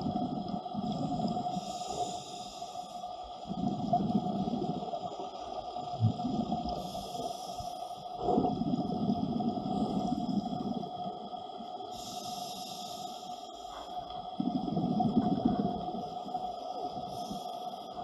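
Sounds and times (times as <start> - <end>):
faint steady tone: 0.0 - 18.0
underwater exhaled bubbles: 0.0 - 18.0
regulator inhale hiss: 0.6 - 5.2, 6.6 - 11.0, 11.8 - 18.0.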